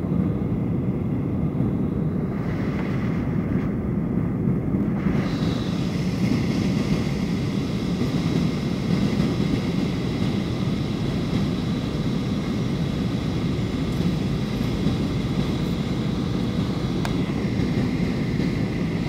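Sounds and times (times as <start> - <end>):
airliner engine roar in cabin: 0.0 - 19.0.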